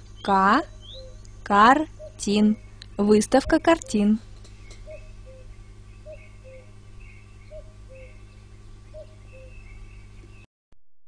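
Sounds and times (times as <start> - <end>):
high bird chirps: 0.0 - 10.4
steady low hum: 0.0 - 10.5.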